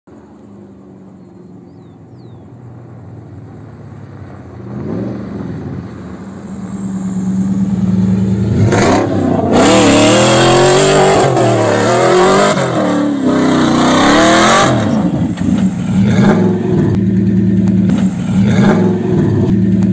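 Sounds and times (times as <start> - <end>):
pickup truck engine revving: 2.7 - 19.9.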